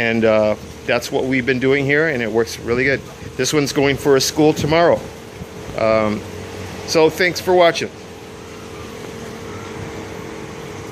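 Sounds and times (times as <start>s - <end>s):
electric air pump humming: 0.0s - 10.9s.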